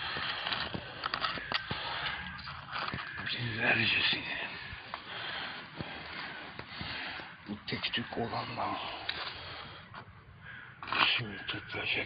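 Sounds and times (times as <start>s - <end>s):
handling clicks and crackles: 0.0s - 7.4s.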